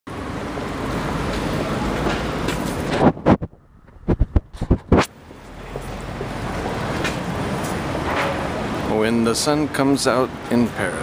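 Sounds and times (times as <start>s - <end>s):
steady rushing noise: 0.2s - 11.0s.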